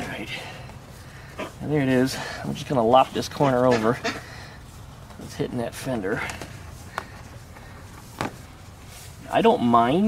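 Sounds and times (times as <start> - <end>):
short scuff: 8.0 - 8.5
cardboard being handled: 8.0 - 8.7.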